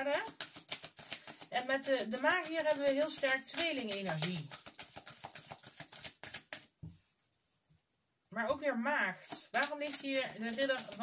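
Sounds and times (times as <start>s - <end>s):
cards clicking: 0.3s - 6.7s, 9.3s - 11.0s.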